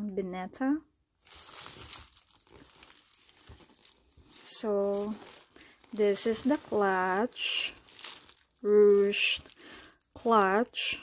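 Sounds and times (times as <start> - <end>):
crinkling and rustling of clutch bag: 1.2 - 10.9.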